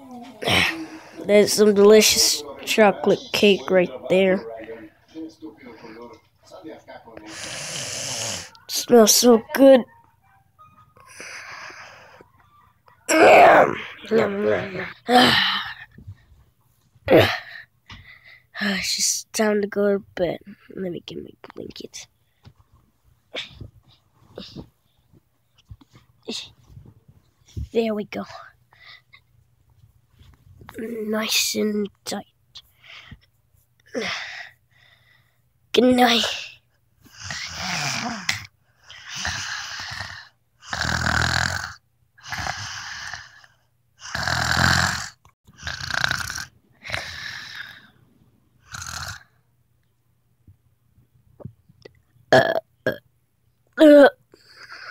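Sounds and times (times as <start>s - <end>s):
person pretend snoring: 7.3s - 8.7s, 37.1s - 47.9s, 48.6s - 49.3s.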